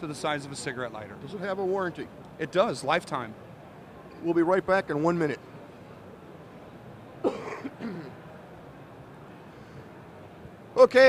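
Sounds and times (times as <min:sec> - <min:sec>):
low background noise: 0:00.0 - 0:11.0
man coughing: 0:07.2 - 0:08.2.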